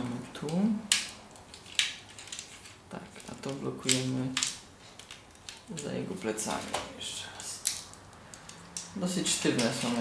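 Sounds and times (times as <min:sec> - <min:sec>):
faint ticks of parts shifting: 0:07.4 - 0:08.9.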